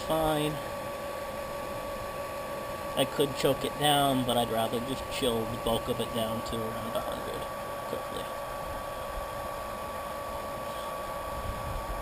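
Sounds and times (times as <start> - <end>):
electric pump whining: 0.0 - 12.0.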